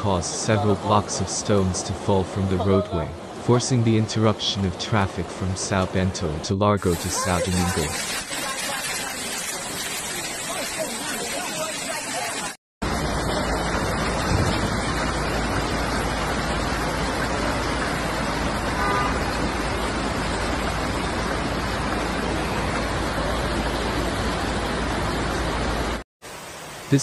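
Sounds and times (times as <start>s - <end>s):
floodwater rushing: 0.0s - 27.0s.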